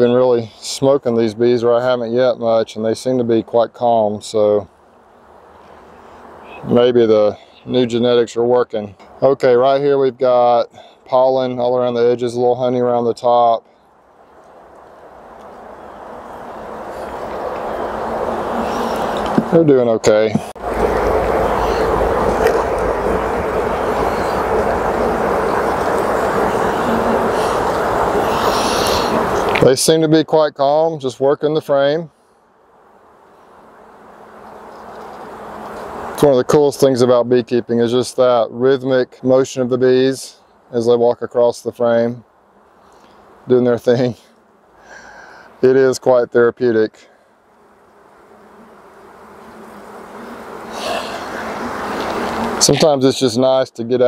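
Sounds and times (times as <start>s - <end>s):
honeybees buzzing: 2.4s - 53.7s
rushing noise: 20.5s - 29.6s.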